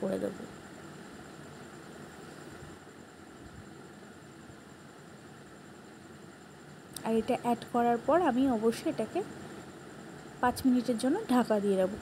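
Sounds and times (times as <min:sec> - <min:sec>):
cooktop whirring hum: 0:00.0 - 0:12.0.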